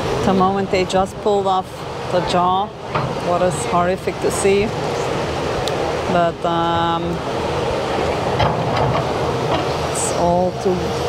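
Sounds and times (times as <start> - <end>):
breaking surf: 0.0 - 11.0
wind: 0.0 - 11.0.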